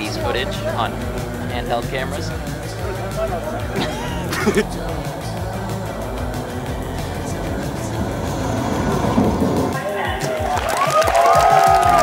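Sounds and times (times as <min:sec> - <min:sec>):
film soundtrack music: 0:00.0 - 0:12.0
low rumble: 0:04.6 - 0:10.7.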